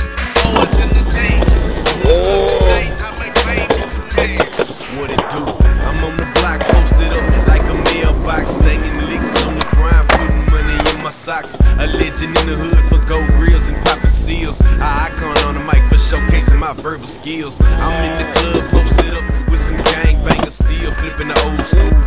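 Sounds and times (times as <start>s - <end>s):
hip-hop beat with heavy bass: 0.0s - 22.0s
skateboard wheels rolling on concrete: 0.0s - 22.0s
skateboard clacking: 0.2s - 14.2s, 15.0s - 22.0s.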